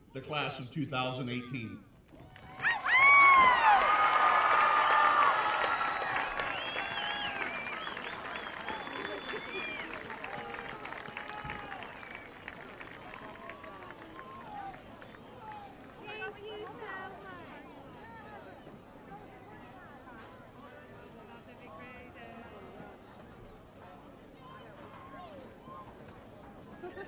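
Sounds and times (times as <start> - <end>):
applause: 2.1 - 17.6
crowd cheering and shouting: 2.3 - 12.3.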